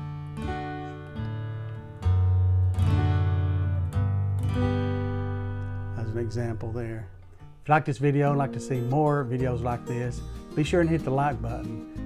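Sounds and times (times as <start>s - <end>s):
acoustic guitar chords strummed: 0.0s - 12.0s.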